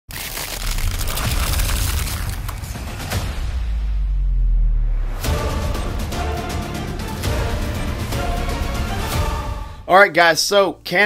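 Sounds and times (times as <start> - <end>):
ground cracking and crunching: 0.0 - 3.0
deep rumble: 0.3 - 6.4.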